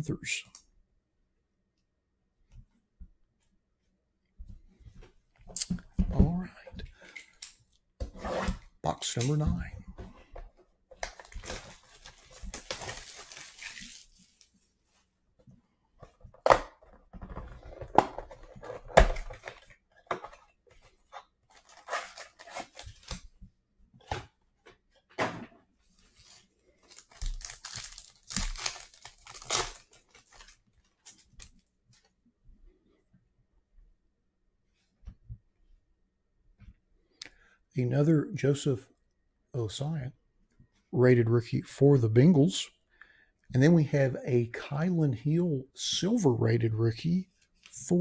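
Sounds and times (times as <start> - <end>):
plastic wrap crinkling: 11.0 - 14.5, 26.2 - 31.6
card packs tearing: 11.1 - 14.1, 21.5 - 23.2, 26.8 - 31.4.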